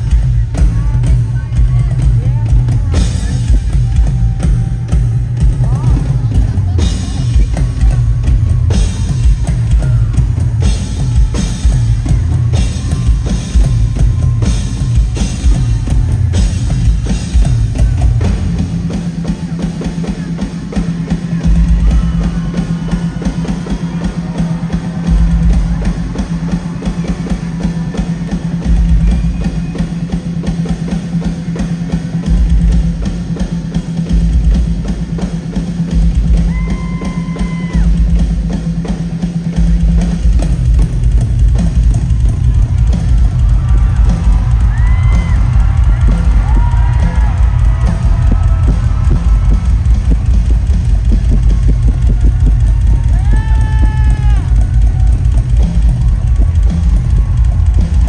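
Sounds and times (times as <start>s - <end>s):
fast heavy bass drum: 0.0s - 58.0s
rock drum solo: 0.0s - 58.0s.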